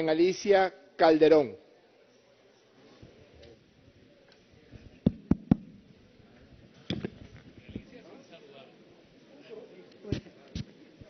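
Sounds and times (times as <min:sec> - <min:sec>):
faint large chamber background noise: 0:00.0 - 0:11.0.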